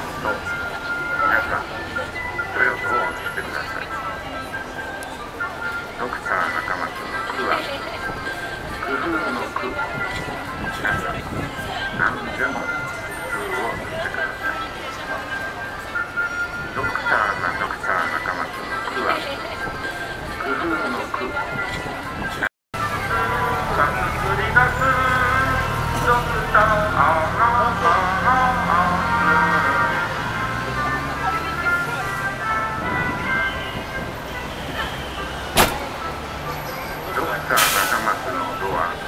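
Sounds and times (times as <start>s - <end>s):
voice over loudspeakers: 0.0s - 5.0s, 5.9s - 15.7s, 16.7s - 19.7s, 20.3s - 39.0s
people talking: 0.0s - 16.0s, 16.8s - 22.1s, 22.8s - 39.0s
city traffic rumble: 0.0s - 39.0s
sharp knock: 35.6s - 36.0s.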